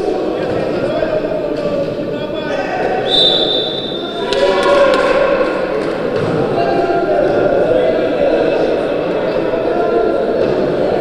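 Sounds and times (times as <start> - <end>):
voices echoing in hall: 0.0 - 11.0
referee's whistle: 3.0 - 4.5.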